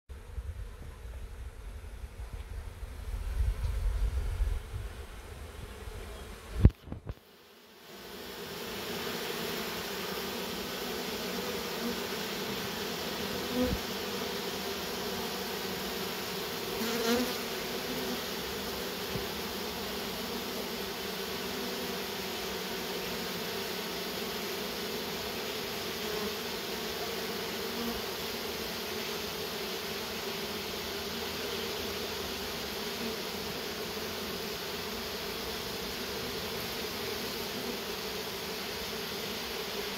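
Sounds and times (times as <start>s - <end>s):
bees buzzing: 4.2s - 39.9s.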